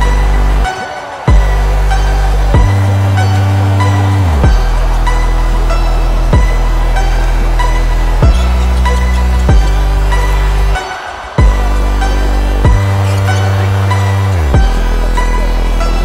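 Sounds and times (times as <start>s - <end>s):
electronic music with heavy bass: 0.0s - 16.0s.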